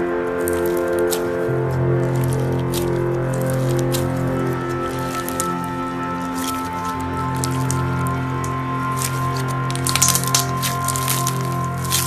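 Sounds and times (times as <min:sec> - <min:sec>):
background music: 0:00.0 - 0:12.0
slime squishing: 0:00.0 - 0:12.0
small crackling clicks: 0:00.1 - 0:12.0.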